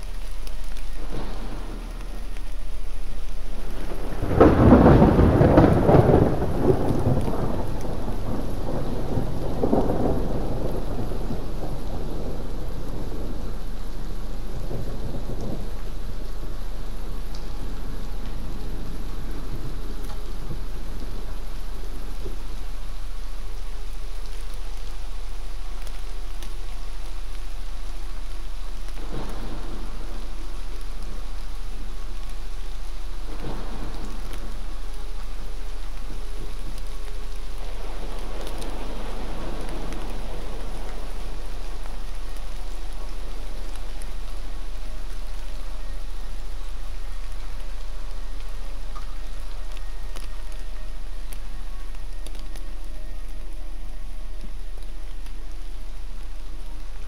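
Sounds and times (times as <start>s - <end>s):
thunder rolling: 0.0s - 23.2s, 28.9s - 51.4s
steady deep hum: 0.0s - 57.0s
steady rain: 0.0s - 57.0s.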